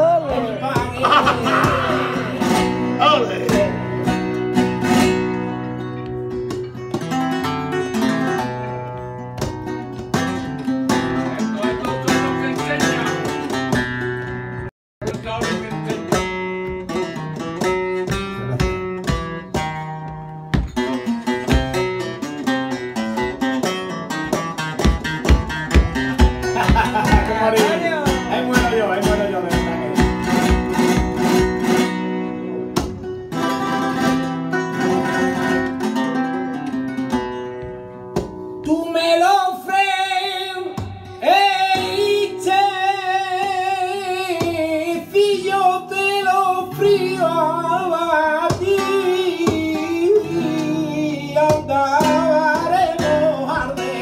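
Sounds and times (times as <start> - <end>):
flamenco guitar playing: 0.0 - 54.0.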